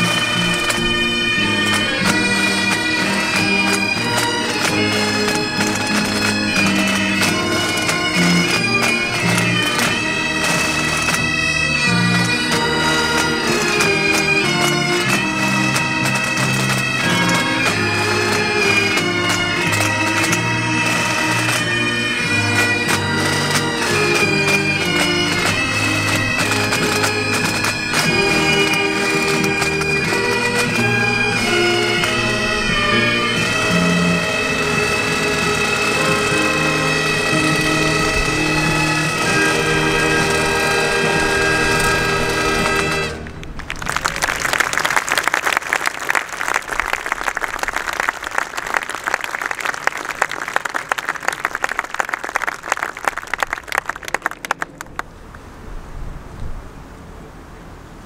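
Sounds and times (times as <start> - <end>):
drums beating: 0.0 - 43.2
bagpipes playing: 0.0 - 43.4
applause: 41.7 - 55.1.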